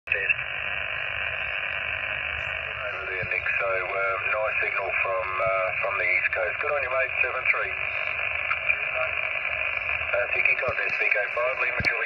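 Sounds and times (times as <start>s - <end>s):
radio receiver hiss: 0.1s - 12.0s
radio voice: 0.1s - 12.0s.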